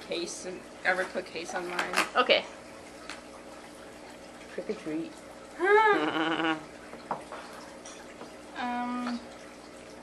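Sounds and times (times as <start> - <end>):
held ooh voice: 5.6 - 6.7.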